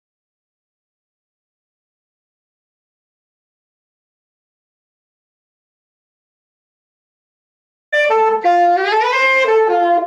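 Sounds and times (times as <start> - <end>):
saxophone melody: 8.0 - 10.0.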